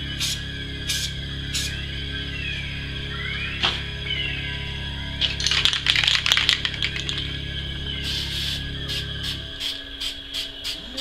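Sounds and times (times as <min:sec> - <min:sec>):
background music: 0:00.0 - 0:11.0
spray can rattling: 0:05.2 - 0:07.3.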